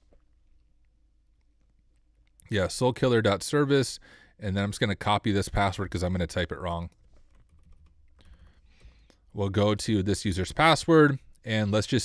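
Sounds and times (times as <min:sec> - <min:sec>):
keyboard keys clicking: 0:06.9 - 0:08.8.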